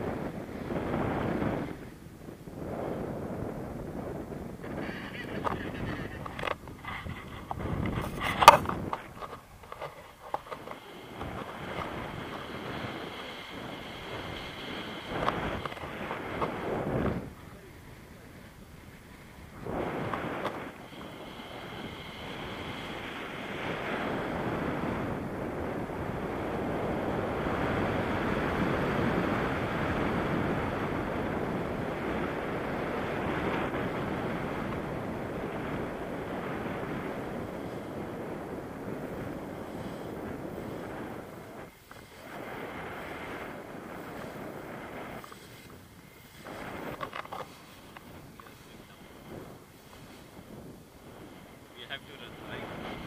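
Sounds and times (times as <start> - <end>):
wind rushing over microphone: 0.0 - 53.0.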